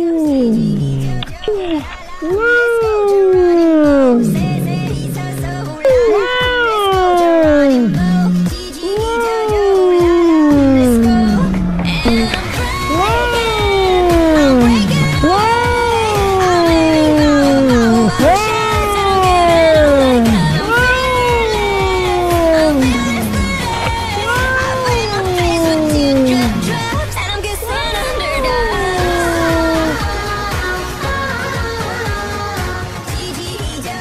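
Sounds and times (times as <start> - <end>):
cat meowing: 0.0 - 30.2
background music with low beat: 0.1 - 27.3.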